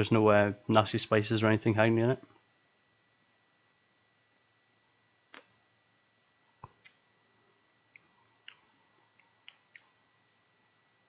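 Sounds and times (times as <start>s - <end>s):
lips smacking on a cigar: 7.9s - 10.0s.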